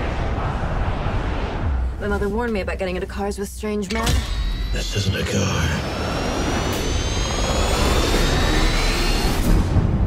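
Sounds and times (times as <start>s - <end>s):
heavy low rumble: 0.0s - 3.5s
trailer music: 0.0s - 10.0s
jet engine whine rising: 4.3s - 10.0s.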